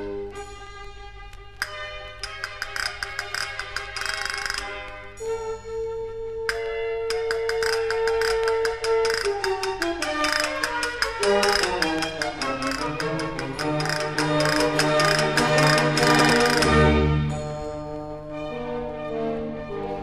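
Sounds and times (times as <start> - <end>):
castanet clicks and rolls: 1.6 - 4.8, 6.5 - 16.9.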